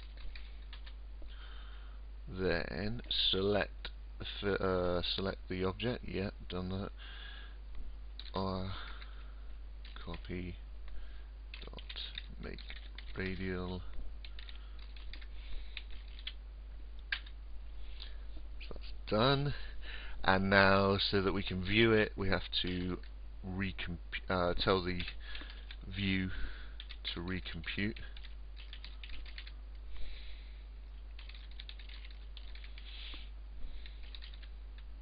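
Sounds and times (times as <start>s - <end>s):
computer keyboard typing: 0.0s - 1.0s, 11.5s - 13.4s, 14.2s - 16.4s, 26.8s - 27.1s, 27.7s - 29.6s, 31.1s - 32.9s, 33.8s - 34.9s
soft hiss: 0.0s - 35.0s.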